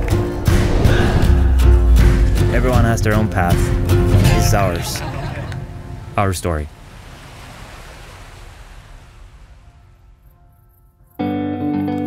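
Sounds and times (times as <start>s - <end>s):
ocean surf washing: 0.0s - 10.5s.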